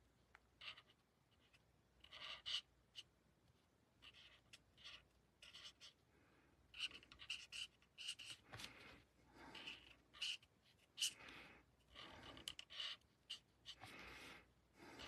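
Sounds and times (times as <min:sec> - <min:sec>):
marker scratching on cardstock: 0:00.6 - 0:03.1, 0:04.0 - 0:06.0, 0:06.7 - 0:08.8, 0:09.4 - 0:11.2, 0:11.9 - 0:14.0.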